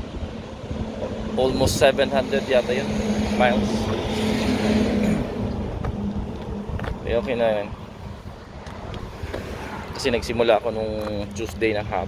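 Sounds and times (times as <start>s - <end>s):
vehicle passing by: 0.0s - 10.8s.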